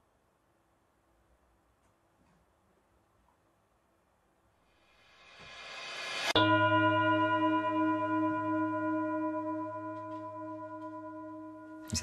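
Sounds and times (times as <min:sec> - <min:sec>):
bell-like ringing tone: 0:06.2 - 0:12.0.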